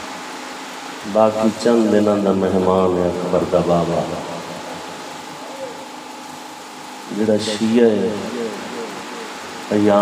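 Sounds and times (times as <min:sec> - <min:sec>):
faint constant hum: 0:00.0 - 0:10.0
steady background hiss: 0:00.0 - 0:10.0.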